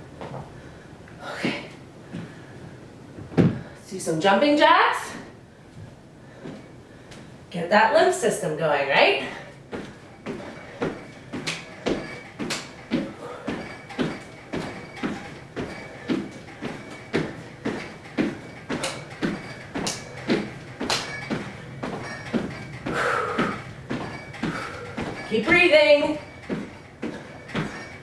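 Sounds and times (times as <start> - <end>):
feet thumping on hardwood floor: 3.2 - 3.7, 9.7 - 27.9.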